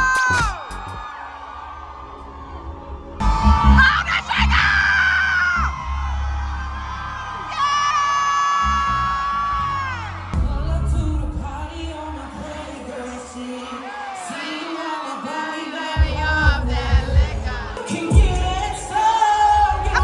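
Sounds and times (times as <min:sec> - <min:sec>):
deep bass music: 0:00.0 - 0:01.1, 0:02.6 - 0:12.6, 0:16.0 - 0:20.0.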